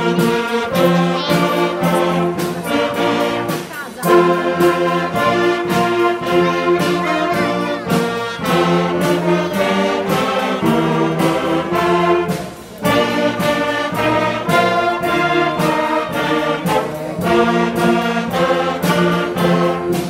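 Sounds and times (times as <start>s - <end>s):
wind band playing: 0.0s - 20.0s.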